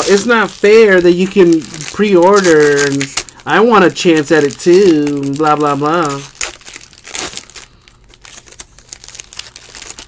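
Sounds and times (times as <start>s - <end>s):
foil wrappers crinkling and tearing: 0.0s - 10.0s.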